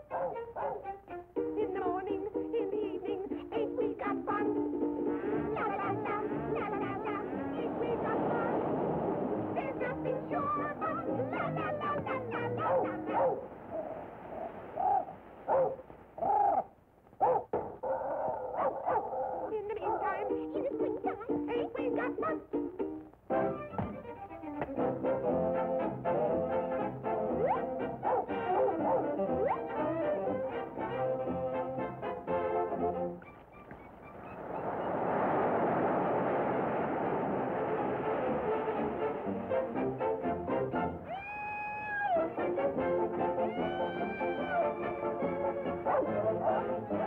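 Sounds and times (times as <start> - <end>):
cartoon dog barking: 0.0 - 1.0, 12.4 - 13.9, 14.8 - 20.4, 27.3 - 30.2, 43.3 - 47.0
cartoon ocean wave crashing: 5.1 - 11.9, 33.3 - 40.0
film music: 22.6 - 34.9, 37.6 - 41.2, 42.1 - 47.0.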